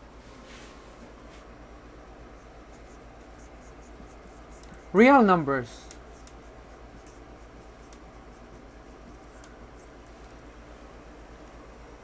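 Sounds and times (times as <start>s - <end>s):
low room hum: 0.0s - 12.0s
marker pen scratching on whiteboard: 2.3s - 5.2s, 5.9s - 10.1s.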